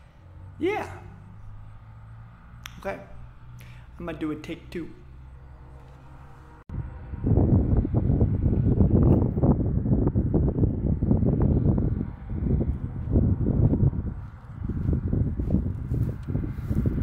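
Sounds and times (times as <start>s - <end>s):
wind buffeting microphone: 6.5s - 17.0s.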